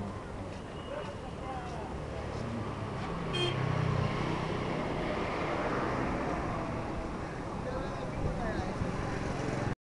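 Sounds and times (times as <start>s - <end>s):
rush of traffic: 0.0s - 9.8s.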